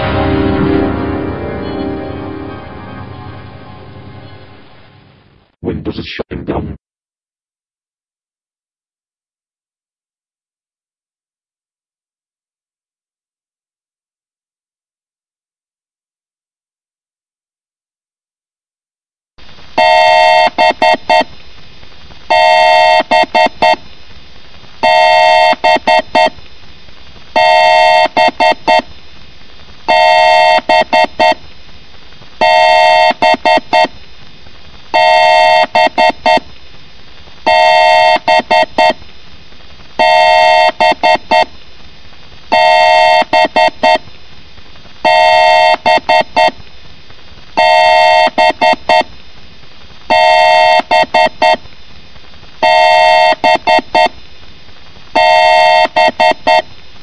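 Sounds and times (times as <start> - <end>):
electronic beeping sound effect: 0.0 - 5.2.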